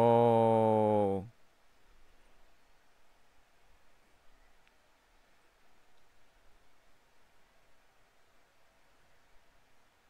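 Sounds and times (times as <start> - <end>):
man exclaiming ohhh: 0.0 - 1.3.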